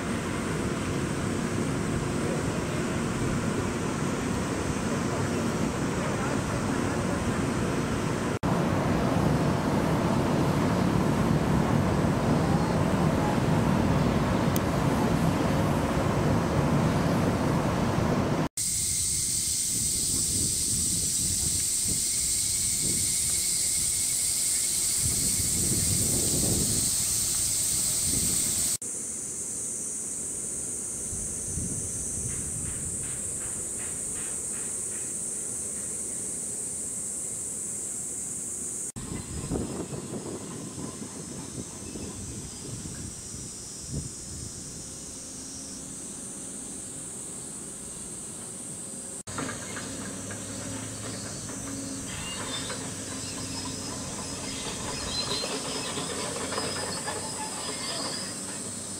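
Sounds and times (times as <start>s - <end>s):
cicadas shrill hiss: 0.0s - 8.4s, 18.6s - 58.9s
pulsing insect call: 18.6s - 58.9s
wind rumble: 24.9s - 28.8s, 39.0s - 45.1s.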